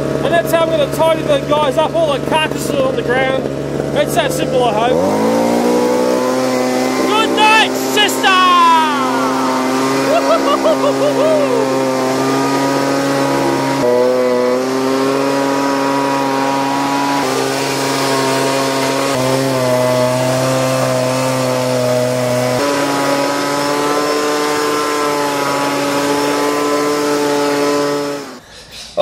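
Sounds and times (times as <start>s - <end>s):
leaf blower running: 0.0s - 28.5s.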